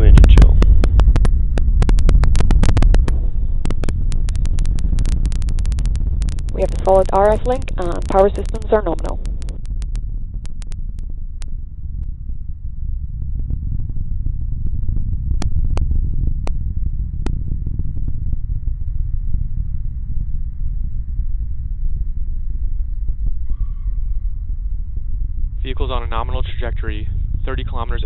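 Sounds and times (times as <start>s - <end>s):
rocket engine crackling rumble: 0.0s - 28.0s
sharp clicks: 0.3s - 11.6s.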